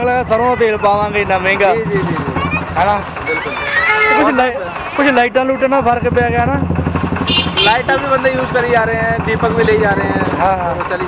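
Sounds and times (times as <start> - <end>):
low hum of street traffic: 0.0 - 11.0
men talking: 0.0 - 11.0.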